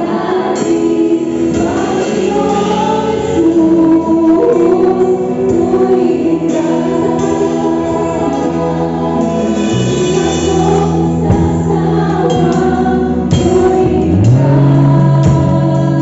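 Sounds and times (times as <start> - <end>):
drum kit played with sticks: 0.0 - 16.0
group singing gospel song: 0.0 - 16.0.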